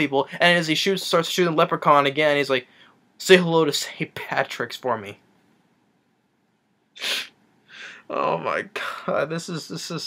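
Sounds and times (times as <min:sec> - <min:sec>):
soft breath: 0:02.6 - 0:03.1, 0:07.0 - 0:08.1
man huffing breath: 0:07.0 - 0:08.1.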